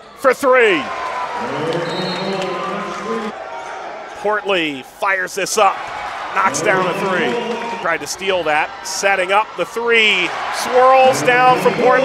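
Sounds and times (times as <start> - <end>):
arena crowd cheering: 0.0 - 12.0.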